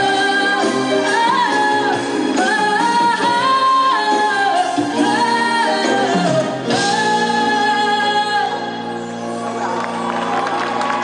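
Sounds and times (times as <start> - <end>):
woman singing into microphone: 0.0 - 9.0
band accompaniment: 0.0 - 11.0.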